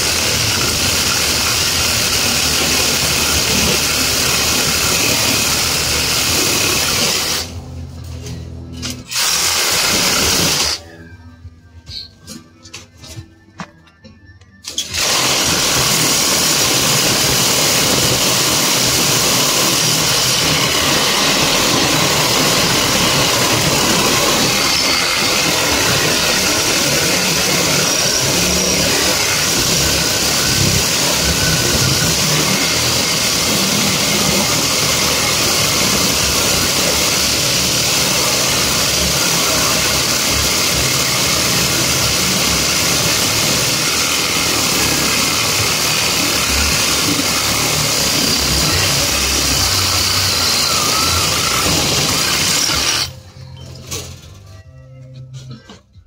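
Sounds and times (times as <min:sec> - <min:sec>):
reciprocating saw cutting wire: 0:14.7 - 0:53.2.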